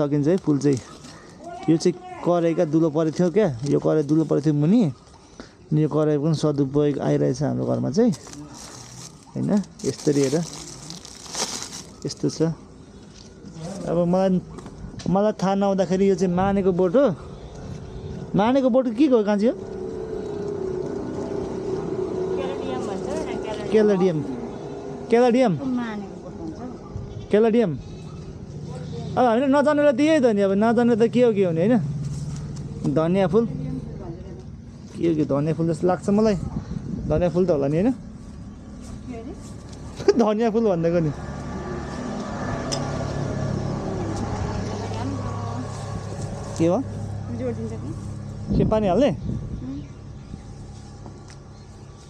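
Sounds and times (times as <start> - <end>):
steady motor drone: 16.3 - 27.0, 35.6 - 52.0.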